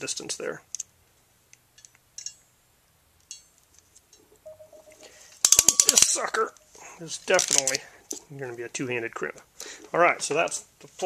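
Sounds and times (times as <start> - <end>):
metal terminal being handled: 1.8 - 2.4.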